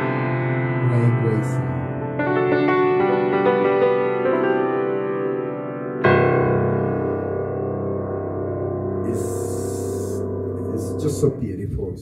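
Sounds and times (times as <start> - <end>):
piano notes ringing: 0.0 - 12.0.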